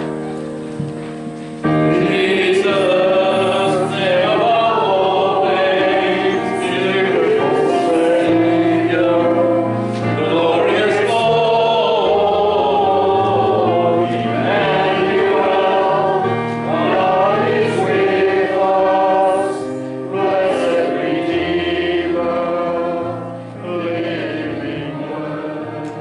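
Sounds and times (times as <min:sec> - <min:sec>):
congregation singing a hymn: 0:00.0 - 0:26.0.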